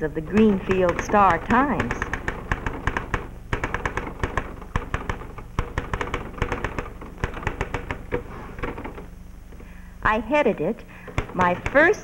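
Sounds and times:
typewriter key strikes: 0.4s - 8.0s.

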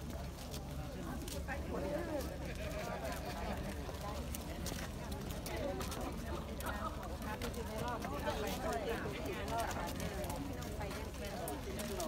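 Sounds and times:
footsteps on brick paving: 0.0s - 12.0s
low murmured chatter: 0.0s - 12.0s.

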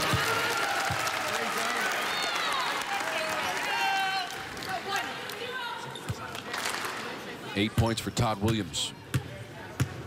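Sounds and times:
murmur of voices: 0.0s - 10.0s
basketball bouncing on court: 8.4s - 10.0s.

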